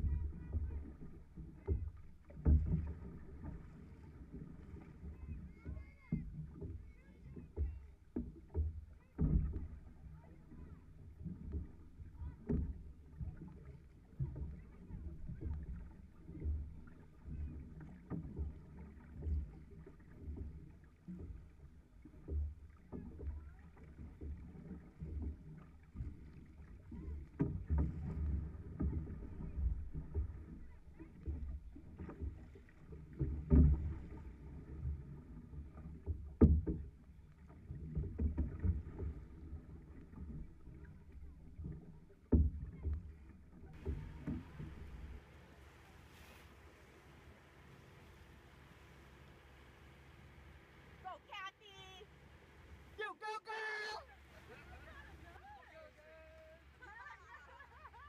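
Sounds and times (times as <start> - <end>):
paddle strokes: 0.0 - 58.0
water rushing along hull: 0.0 - 58.0.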